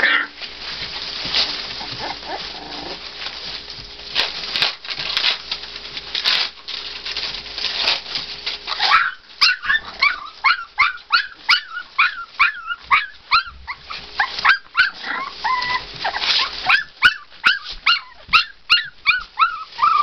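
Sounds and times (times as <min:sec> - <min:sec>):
puppies yelping: 0:00.0 - 0:00.4, 0:01.3 - 0:03.1, 0:08.7 - 0:20.0
puppy whining: 0:01.3 - 0:03.1, 0:08.7 - 0:20.0.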